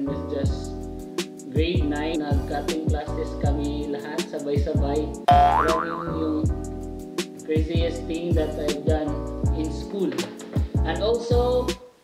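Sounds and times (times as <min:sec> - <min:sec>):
comic sliding wobbling tone: 0:05.3 - 0:06.2.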